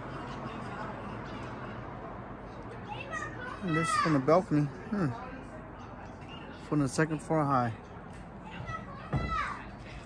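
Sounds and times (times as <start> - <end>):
children's voices: 2.8 - 4.1.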